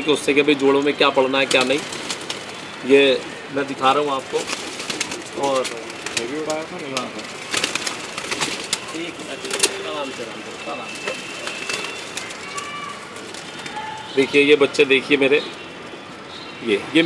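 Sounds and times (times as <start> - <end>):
pigeons cooing: 1.4 - 17.0
wing claps and rustles: 4.3 - 14.1.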